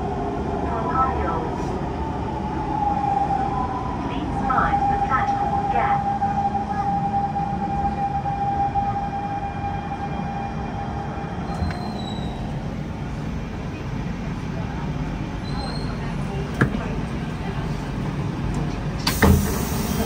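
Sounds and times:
high train whine: 0:00.0 - 0:20.0.

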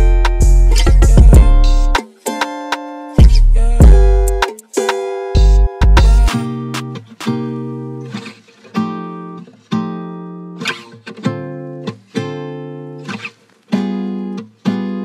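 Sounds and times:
plucked guitar chords: 0:00.0 - 0:15.0.

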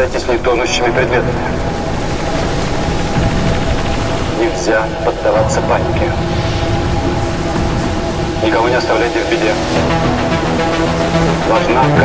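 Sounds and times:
aircraft engines droning: 0:00.0 - 0:12.0
trailer music: 0:00.0 - 0:12.0.

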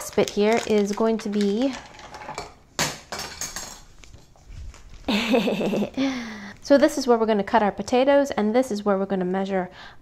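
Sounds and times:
plastic pieces knocking on wooden table: 0:00.1 - 0:03.9.

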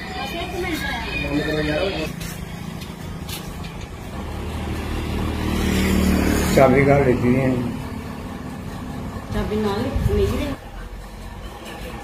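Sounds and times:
vehicle engine passing by: 0:01.2 - 0:12.0.

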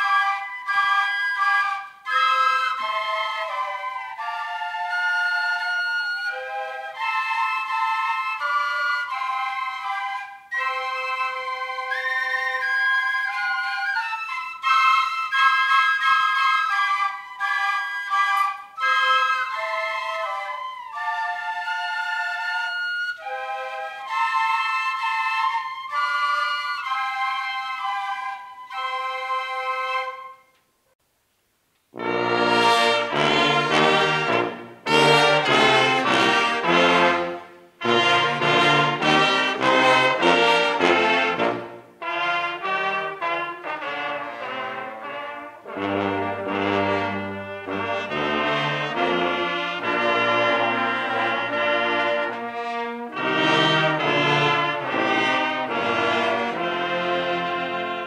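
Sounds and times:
trumpet ensemble playing: 0:00.0 - 0:30.4, 0:31.9 - 0:58.0
flute ensemble melody: 0:00.0 - 0:30.9, 0:31.9 - 0:58.0.

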